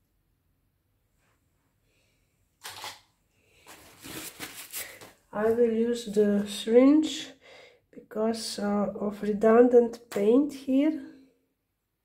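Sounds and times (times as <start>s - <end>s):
hands rustling plastic: 3.6s - 5.2s.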